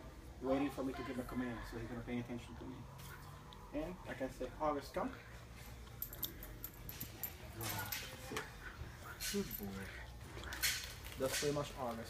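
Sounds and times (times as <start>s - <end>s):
light clicks and jingles: 5.6s - 8.5s, 9.1s - 12.0s.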